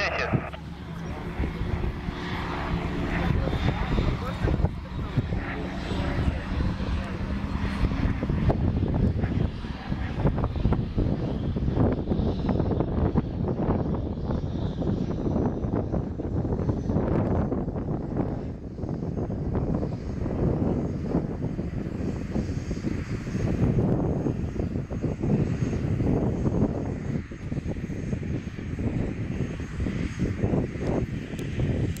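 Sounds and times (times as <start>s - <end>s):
light aircraft propeller droning: 0.0s - 32.0s.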